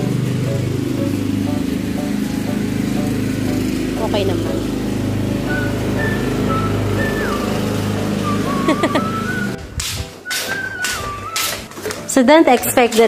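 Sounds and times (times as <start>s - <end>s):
ride-on lawn mower engine: 0.0s - 9.8s
whistled tune: 5.4s - 12.0s.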